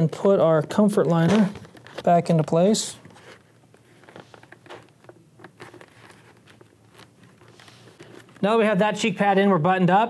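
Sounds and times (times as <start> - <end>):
fabric rustling and scraping: 3.1 - 8.5.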